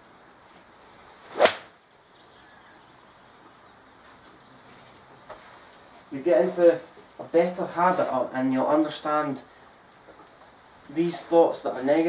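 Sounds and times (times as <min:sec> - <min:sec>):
golf club swish: 0:00.9 - 0:01.8
golf club striking ball: 0:01.4 - 0:01.7.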